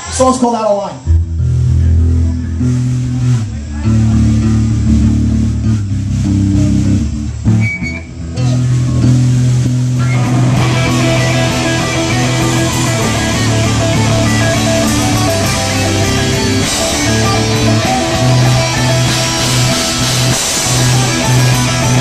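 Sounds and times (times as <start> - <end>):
band playing: 0.0 - 22.0
electric bass guitar riff: 1.0 - 22.0.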